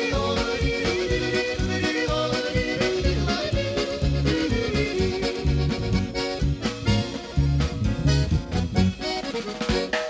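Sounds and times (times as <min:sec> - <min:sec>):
bouncy band accompaniment: 0:00.0 - 0:10.0.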